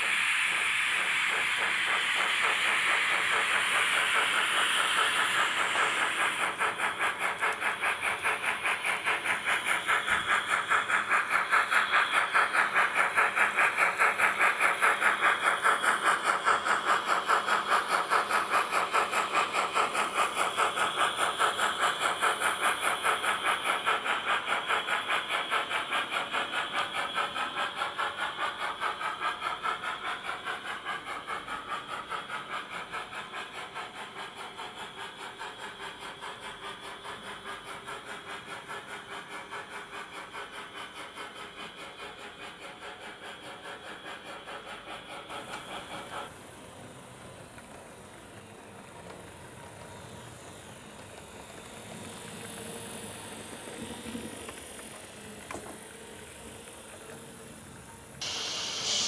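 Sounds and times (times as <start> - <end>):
steam hiss: 0.0 - 59.0
steam locomotive chuffing: 0.0 - 59.0.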